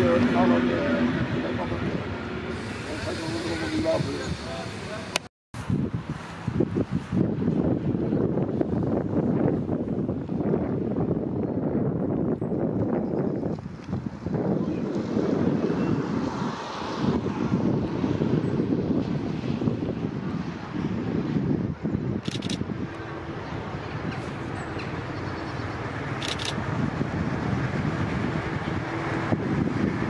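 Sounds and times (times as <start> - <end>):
diesel locomotive running: 0.0 - 5.2, 22.0 - 30.0
wind buffeting microphone: 5.6 - 30.0.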